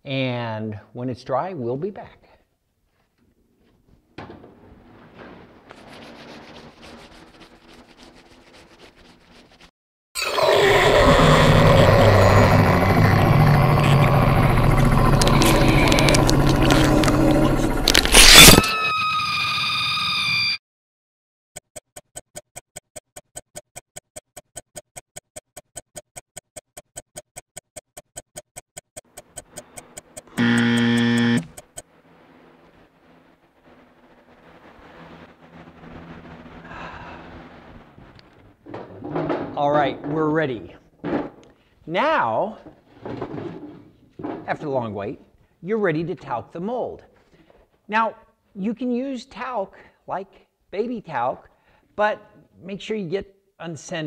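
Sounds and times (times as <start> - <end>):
clock ticking: 21.6 - 31.8
short buzz: 29.2 - 31.9.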